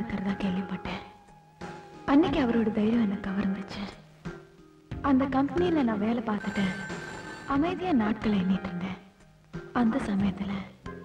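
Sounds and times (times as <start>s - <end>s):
steady high electronic tone: 6.4s - 8.1s.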